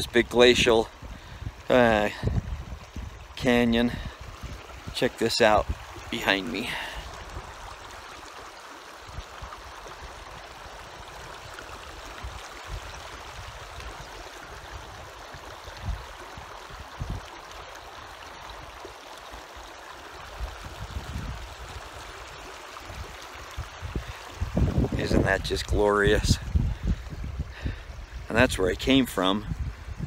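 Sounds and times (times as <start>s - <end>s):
creek running over rocks: 0.0s - 30.0s.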